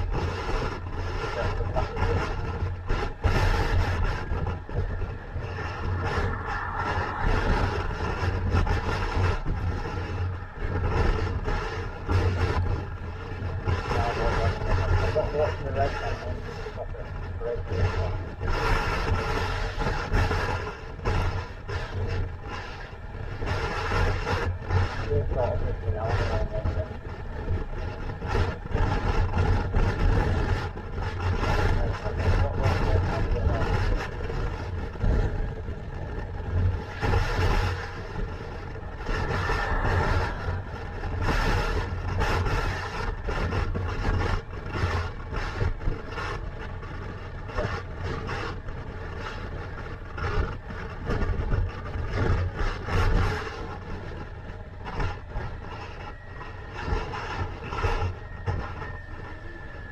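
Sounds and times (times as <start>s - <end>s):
motorcycle engine running: 0.0s - 59.9s
road noise: 0.0s - 59.9s
wind buffeting on microphone: 0.0s - 59.9s.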